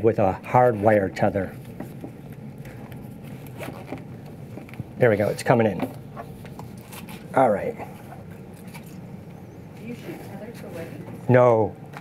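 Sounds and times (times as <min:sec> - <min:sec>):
low room hum: 0:00.0 - 0:12.0
scraping and rustling of equipment: 0:02.6 - 0:09.0.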